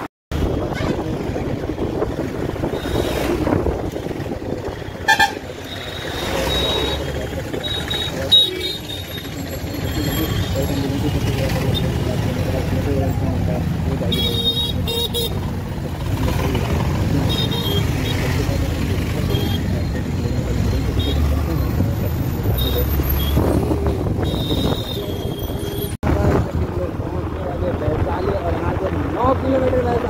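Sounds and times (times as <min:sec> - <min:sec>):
motorcycle rumbling: 0:00.0 - 0:30.0
vehicle horn beeps: 0:05.0 - 0:07.1.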